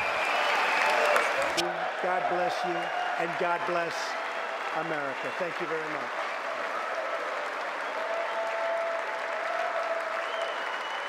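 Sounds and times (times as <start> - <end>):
large audience applauding: 0.0 - 11.0.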